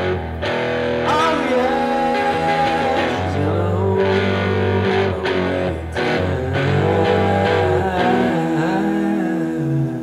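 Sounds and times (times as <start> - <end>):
blues guitar chord with bend: 0.0 - 9.0.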